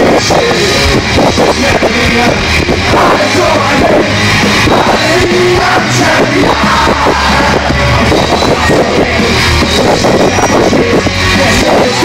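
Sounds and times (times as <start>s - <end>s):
heavy rock band playing live: 0.0s - 12.0s.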